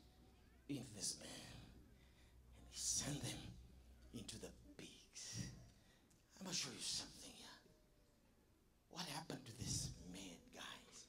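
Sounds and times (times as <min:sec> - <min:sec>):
man whispering into microphone: 0:00.7 - 0:01.8, 0:02.6 - 0:05.7, 0:06.3 - 0:07.7, 0:08.9 - 0:11.0.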